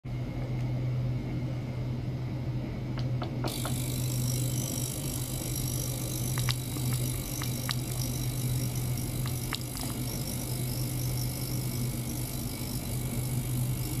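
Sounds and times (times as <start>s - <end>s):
ultrasonic cleaner humming: 0.2s - 14.0s.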